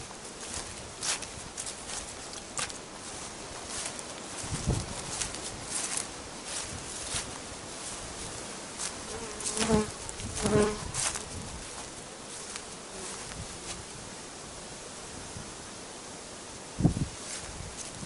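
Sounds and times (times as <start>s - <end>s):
honeybees buzzing: 0.0s - 18.0s
bee passing close by: 4.3s - 17.5s.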